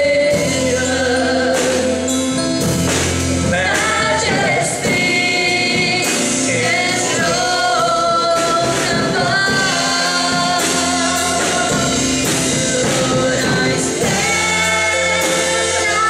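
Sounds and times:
man singing into a microphone: 0.0s - 2.4s, 6.0s - 16.0s
musical accompaniment: 0.0s - 16.0s.

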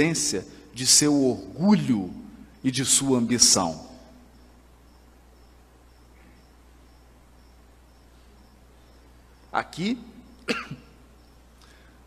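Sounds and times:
man coughing: 10.5s - 11.0s.

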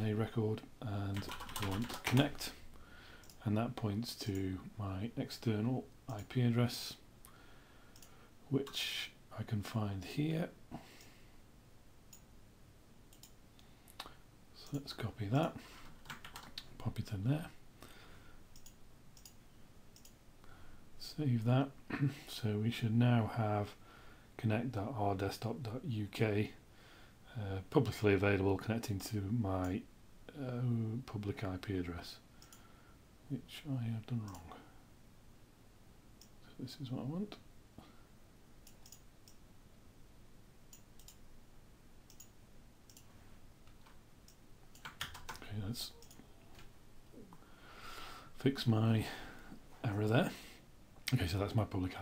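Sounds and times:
computer mouse clicks: 8.0s - 8.8s, 13.1s - 14.1s, 18.5s - 19.4s, 20.0s - 20.2s, 32.4s - 32.7s, 38.6s - 39.4s, 40.7s - 41.2s, 42.1s - 43.1s, 43.7s - 46.7s.

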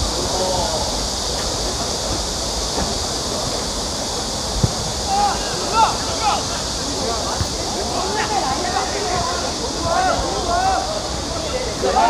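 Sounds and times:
outdoor hiss and rumble: 0.0s - 12.0s
football kick thud: 4.5s - 5.2s.

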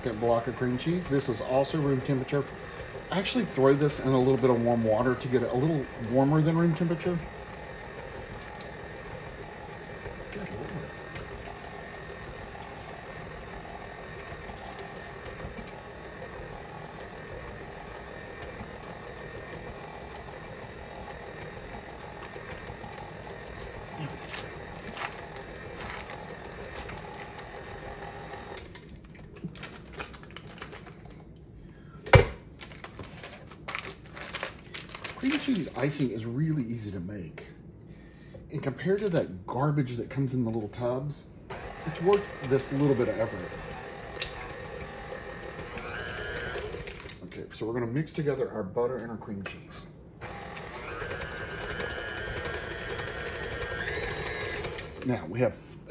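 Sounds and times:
stand mixer running: 0.0s - 28.9s, 41.5s - 47.2s, 50.2s - 55.4s.

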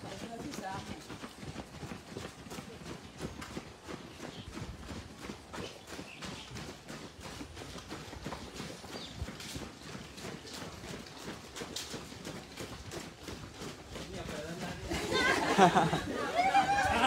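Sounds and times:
running footsteps on asphalt: 0.0s - 17.0s.

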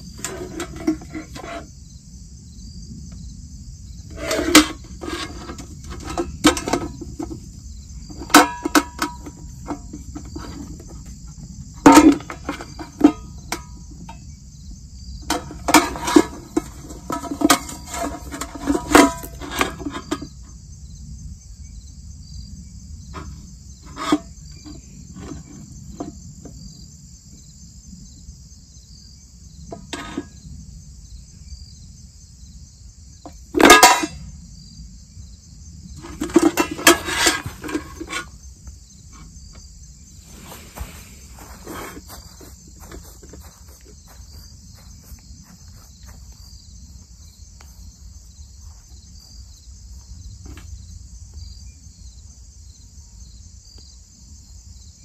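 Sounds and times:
crickets chirping: 0.0s - 55.0s.

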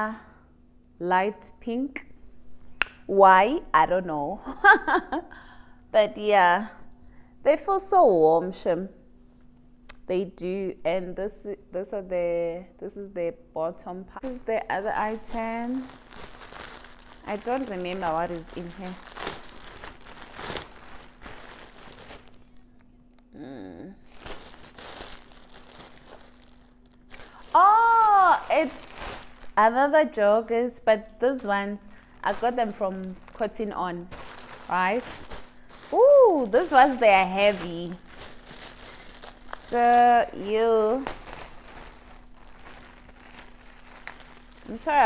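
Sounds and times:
plastic packaging crinkling: 14.2s - 23.3s, 24.0s - 29.8s, 31.3s - 45.0s
person exclaiming: 27.5s - 28.8s, 35.9s - 36.8s.

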